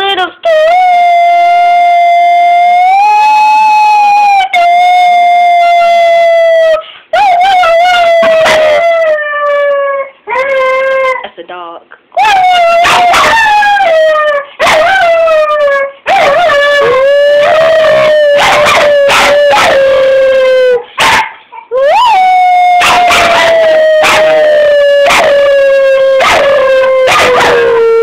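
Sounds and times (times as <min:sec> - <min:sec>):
dog howling: 0:00.7 - 0:11.3, 0:12.2 - 0:28.0.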